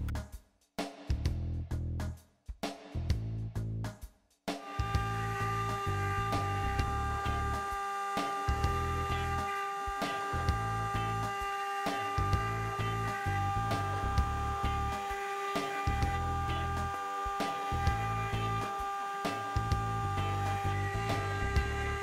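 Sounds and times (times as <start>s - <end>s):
background music with bass line: 0.0s - 22.0s
router spindle high whine: 4.6s - 22.0s.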